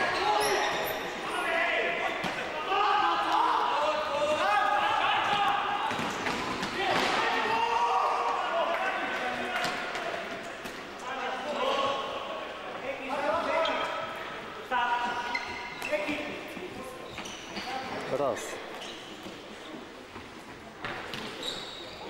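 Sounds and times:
players shouting echoing: 0.0 - 10.4.

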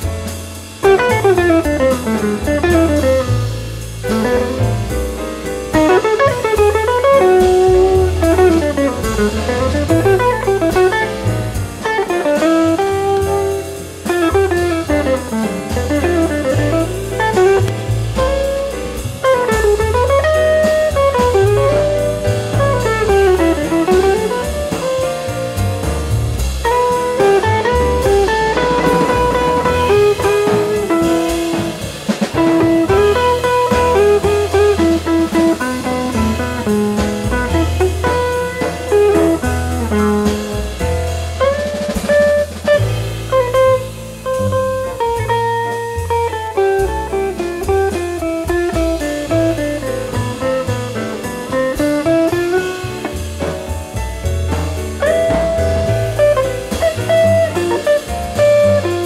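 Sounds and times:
drum kit cymbals: 0.0 - 59.0
jazz guitar: 0.0 - 59.0
upright double bass: 0.0 - 59.0.

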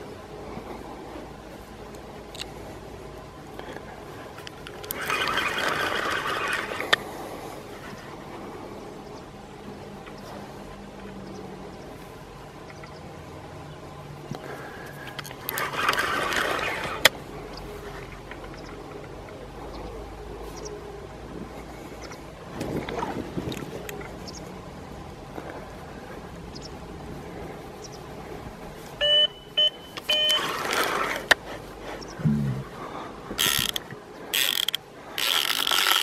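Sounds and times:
faint low hum: 0.0 - 35.8
reel click: 4.4 - 7.0, 15.1 - 17.2, 33.3 - 36.0
fishing reel buzzing: 4.6 - 7.3, 15.1 - 17.1, 33.4 - 36.0.

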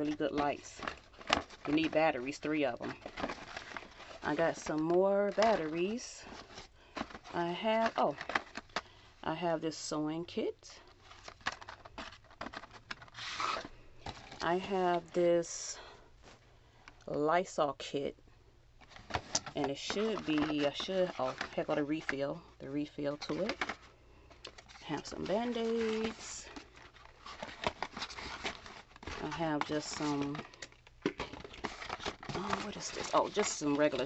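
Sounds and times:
cardboard boxes rustling: 0.0 - 8.8, 10.9 - 15.0, 18.8 - 22.2, 23.1 - 23.9, 24.5 - 34.0.

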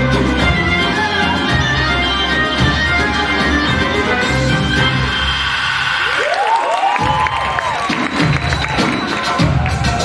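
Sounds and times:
dance music: 0.0 - 10.0
audience cheering and whooping: 5.3 - 10.0.

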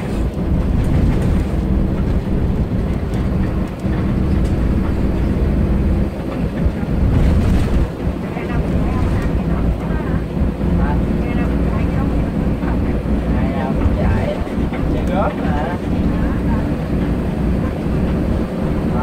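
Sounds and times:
bus engine and road rumble: 0.0 - 19.0
people's voices: 7.7 - 17.8.

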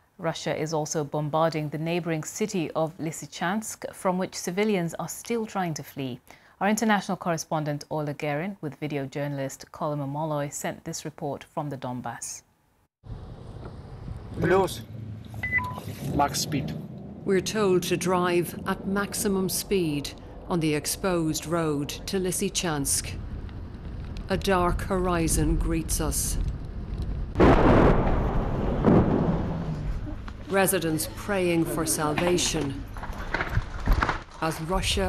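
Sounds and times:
car driving interior drone: 13.0 - 17.8
shell explosions rumbling: 13.1 - 35.0.

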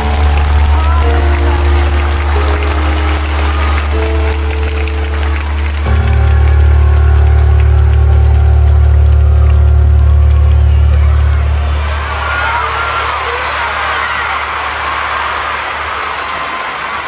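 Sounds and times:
long held chords: 0.0 - 12.2
deep bass drone: 0.0 - 13.0.

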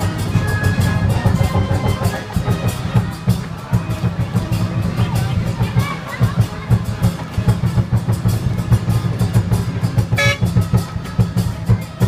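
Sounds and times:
drums and cymbals fast beat: 0.0 - 12.0
short horn toot: 10.2 - 10.6.

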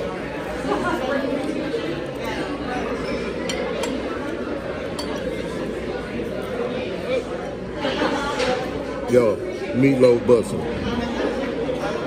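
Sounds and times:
background chatter: 0.0 - 12.0
dishes and cutlery clinking: 2.0 - 6.6.

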